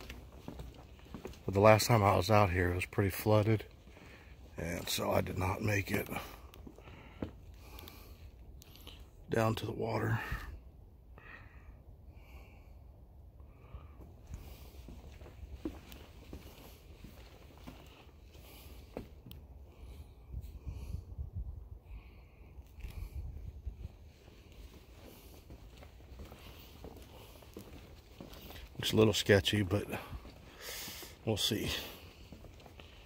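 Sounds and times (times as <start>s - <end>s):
footsteps on wooden boardwalk: 0.0s - 9.0s, 13.7s - 20.7s, 22.0s - 33.0s
wind buffeting microphone: 20.1s - 22.2s, 22.8s - 24.2s.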